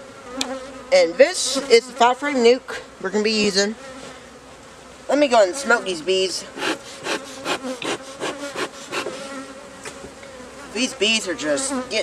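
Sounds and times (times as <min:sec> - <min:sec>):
honeybees humming: 0:00.0 - 0:12.0
bee smoker bellows puffing: 0:03.4 - 0:11.9.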